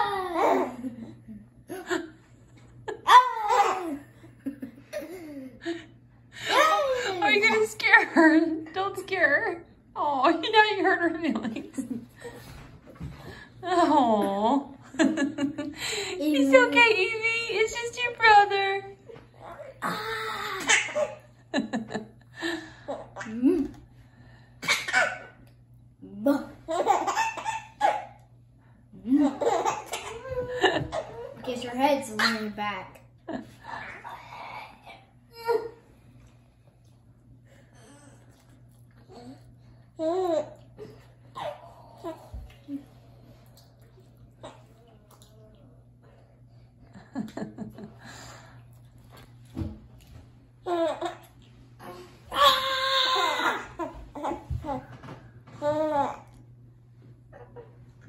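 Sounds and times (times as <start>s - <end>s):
child laughing: 2.9s - 5.8s.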